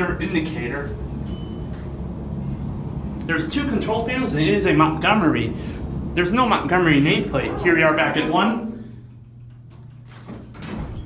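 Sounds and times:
elevator car hum: 0:00.0 - 0:11.0
elevator doors sliding open: 0:04.1 - 0:11.0.

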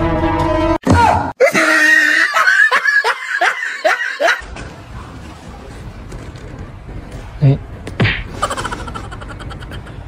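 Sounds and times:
person laughing: 0:01.4 - 0:04.4, 0:08.4 - 0:10.0.

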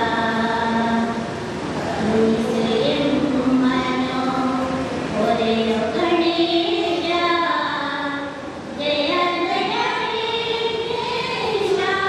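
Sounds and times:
women singing in unison: 0:01.9 - 0:12.0.

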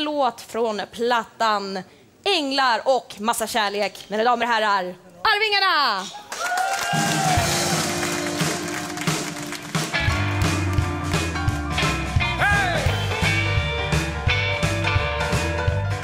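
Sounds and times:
live rock band instrumental: 0:07.0 - 0:16.0
bass and drums steady beat: 0:07.2 - 0:16.0.

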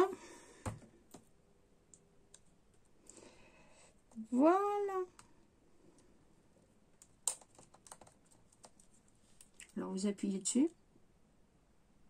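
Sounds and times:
small objects clicking: 0:07.0 - 0:09.7.

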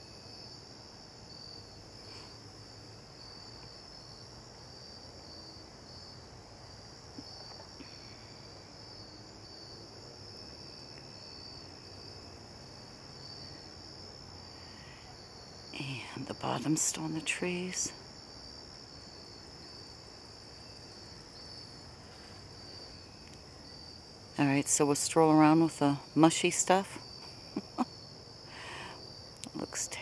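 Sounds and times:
crickets trilling: 0:00.0 - 0:30.0.

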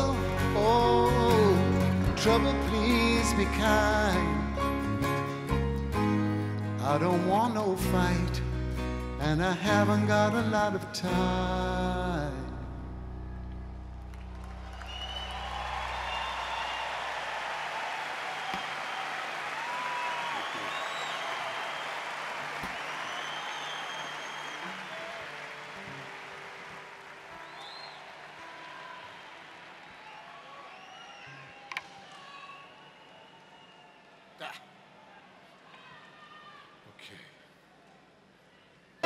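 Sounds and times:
audience applauding and cheering: 0:13.8 - 0:34.4
whistles: 0:14.8 - 0:17.1, 0:18.4 - 0:19.0, 0:19.7 - 0:25.2, 0:27.4 - 0:28.1, 0:29.9 - 0:34.2.

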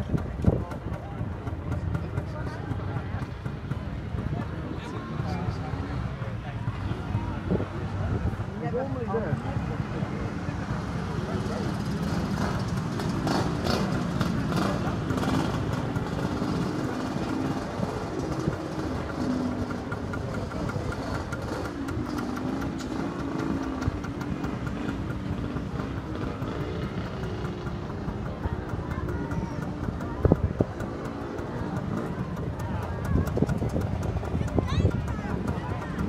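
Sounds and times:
indistinct voices: 0:00.0 - 0:36.0.

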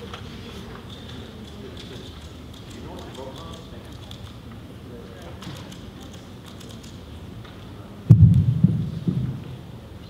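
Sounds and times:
dull low thumps: 0:08.1 - 0:09.6.

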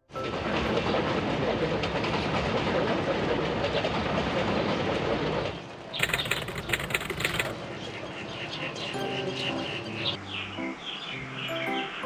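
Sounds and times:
wheels clattering on rails: 0:00.1 - 0:08.0
train rumbling past: 0:00.1 - 0:12.0.

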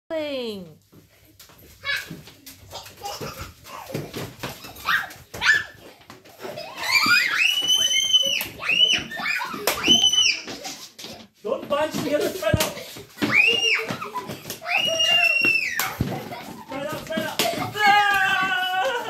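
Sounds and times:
children shouting and squealing: 0:01.8 - 0:11.0, 0:13.0 - 0:19.0.

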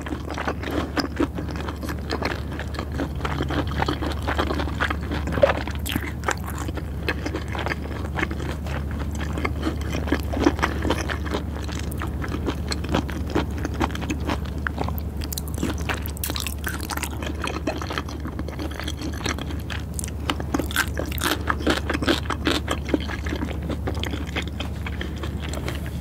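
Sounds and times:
wet chewing: 0:00.0 - 0:26.0.

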